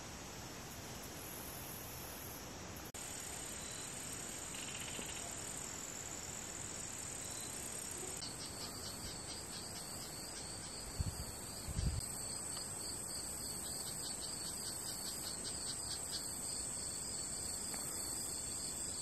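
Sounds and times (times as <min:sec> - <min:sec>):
insects trilling: 0:00.0 - 0:19.0
insect pulsing chirps: 0:01.2 - 0:05.8, 0:06.4 - 0:19.0.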